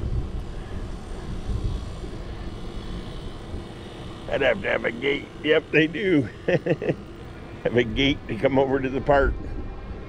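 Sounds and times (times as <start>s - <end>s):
wind buffeting microphone: 0.0s - 5.4s, 7.8s - 10.0s.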